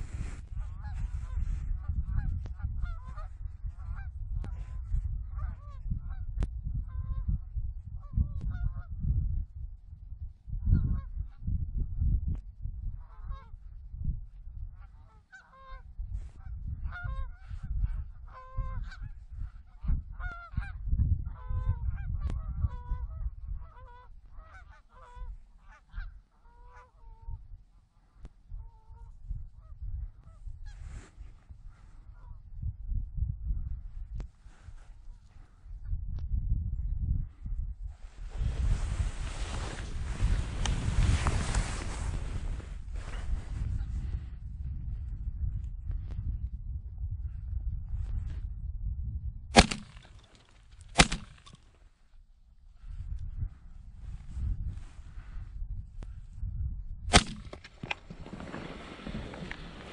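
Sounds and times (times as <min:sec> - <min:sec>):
wind rumble on microphone: 0:00.0 - 0:59.9.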